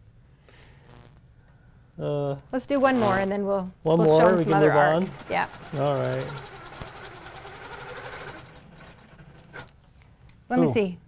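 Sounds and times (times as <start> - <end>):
quilting machine stitching: 4.2 - 9.8.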